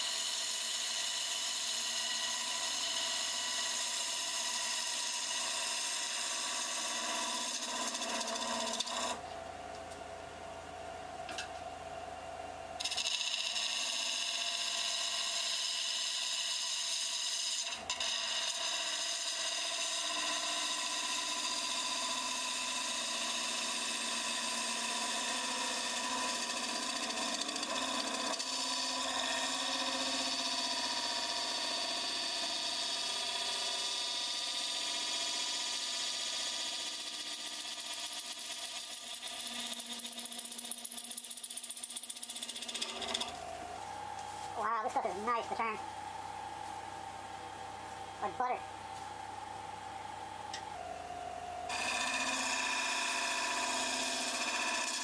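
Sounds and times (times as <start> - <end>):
gouge cutting wood: 0.0 - 9.2, 12.8 - 41.5, 51.7 - 55.0
lathe hum: 0.0 - 55.0.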